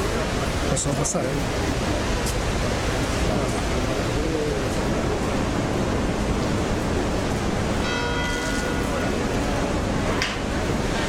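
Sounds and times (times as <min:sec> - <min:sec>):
faint voices: 0:00.0 - 0:11.0
outdoor background hiss: 0:00.0 - 0:11.0.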